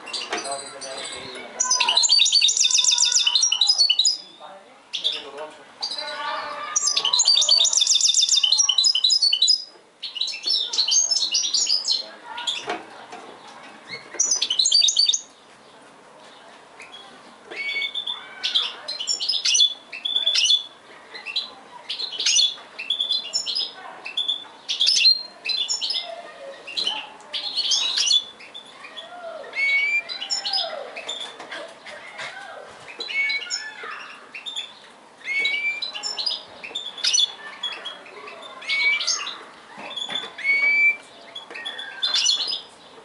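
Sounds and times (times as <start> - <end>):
finch twittering song: 0.0 - 4.3, 6.8 - 12.7, 13.9 - 15.4, 26.7 - 31.4, 32.9 - 43.0.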